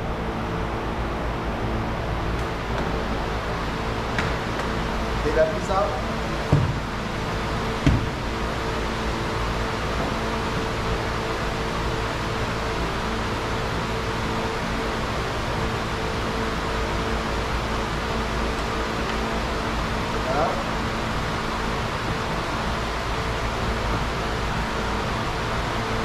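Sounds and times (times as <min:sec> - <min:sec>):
low electrical hum: 0:00.0 - 0:26.0
knock: 0:06.5 - 0:06.9, 0:07.8 - 0:08.2.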